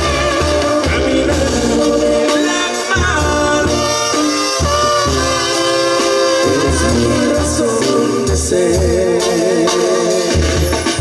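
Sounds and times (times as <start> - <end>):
trumpets and trombones playing: 0.0 - 11.0.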